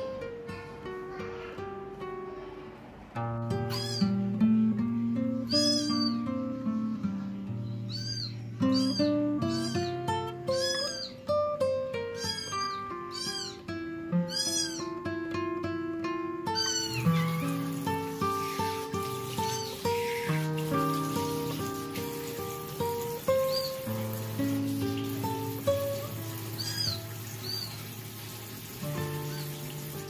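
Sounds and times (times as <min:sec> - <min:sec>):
instrumental music: 0:03.2 - 0:30.0
kitten mewing: 0:03.7 - 0:04.1, 0:07.9 - 0:11.2, 0:12.1 - 0:15.0, 0:16.5 - 0:17.4.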